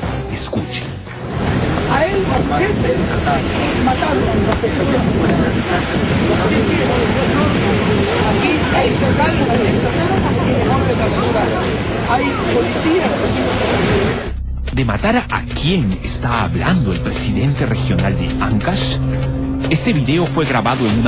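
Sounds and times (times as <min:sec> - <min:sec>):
man talking indistinctly: 0:00.2 - 0:01.1, 0:14.6 - 0:21.0
wind: 0:01.1 - 0:14.3
surf rushing: 0:01.1 - 0:14.4.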